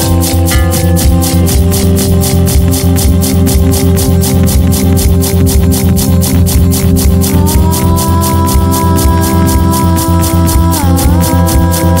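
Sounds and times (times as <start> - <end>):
experimental pop instrumental: 0.0 - 12.0
held synth notes: 0.0 - 12.0
high ticking pulse: 0.0 - 12.0
repeating low bass: 0.0 - 12.0.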